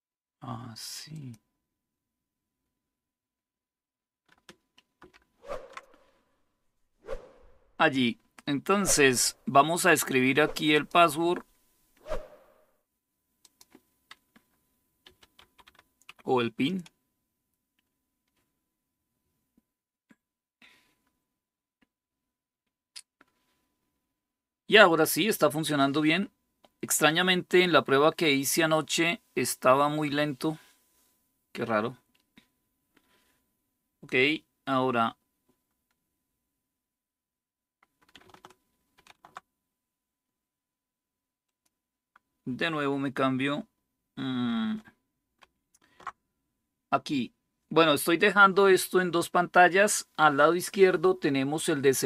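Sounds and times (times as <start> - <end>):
keyboard keys clicking: 15.0 - 16.2, 38.0 - 39.4.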